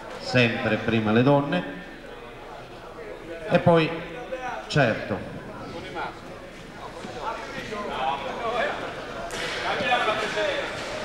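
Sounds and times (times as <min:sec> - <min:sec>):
indistinct chatter in a hall: 0:00.0 - 0:11.0.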